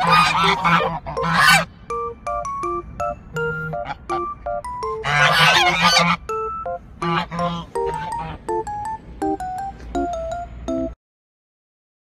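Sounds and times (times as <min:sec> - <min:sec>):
geese honking: 0:00.0 - 0:01.7, 0:03.3 - 0:08.7
plucked background tune: 0:00.0 - 0:11.0.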